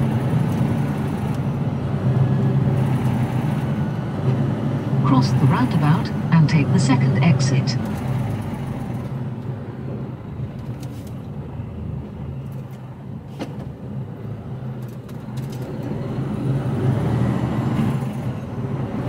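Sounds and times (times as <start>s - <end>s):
lorry diesel engine: 0.0s - 19.0s.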